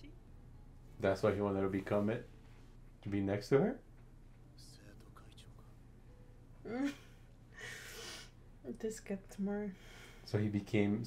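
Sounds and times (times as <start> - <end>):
faint whisper-like sounds: 4.5 - 6.1.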